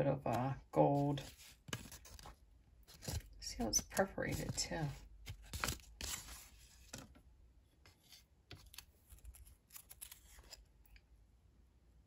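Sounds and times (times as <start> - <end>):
paper rustling: 1.2 - 7.2, 7.8 - 10.7.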